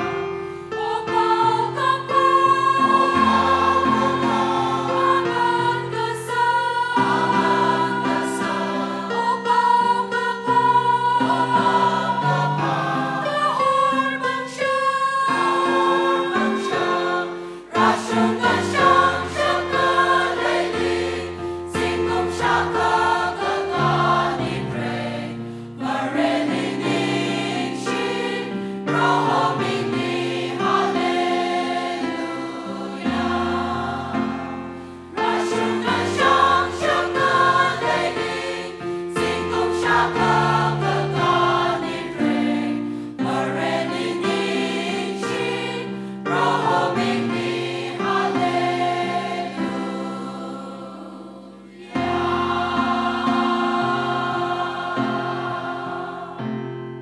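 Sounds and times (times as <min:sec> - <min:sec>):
mixed choir singing a hymn: 0:00.0 - 0:57.0.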